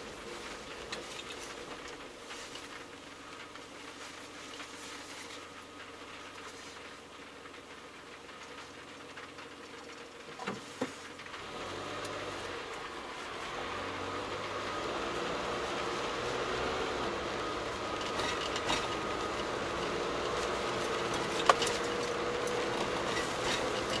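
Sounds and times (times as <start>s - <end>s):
car engine idling: 0.0s - 24.0s
engine and tyre noise: 0.0s - 24.0s.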